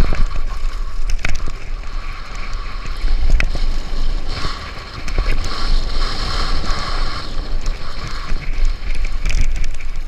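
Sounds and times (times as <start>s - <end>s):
faint bike clicks: 0.0s - 3.6s, 7.6s - 10.0s
tyres rolling over gravel: 0.0s - 10.0s
wind buffeting microphone: 0.0s - 10.0s.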